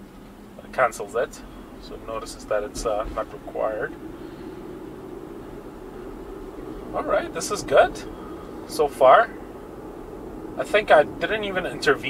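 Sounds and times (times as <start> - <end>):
road and tyre noise in car: 0.0 - 12.0.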